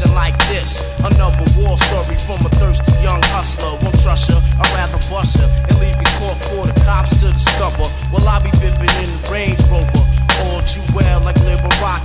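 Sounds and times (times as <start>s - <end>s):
man rapping over a beat: 0.0s - 12.0s.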